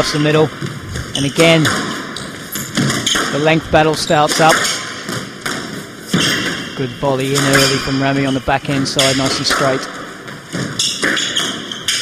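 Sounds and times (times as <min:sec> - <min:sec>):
squash ball knocks: 0:00.0 - 0:12.0.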